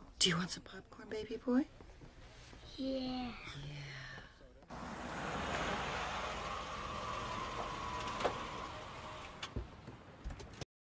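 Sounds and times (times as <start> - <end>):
car driving past: 4.7 - 9.6.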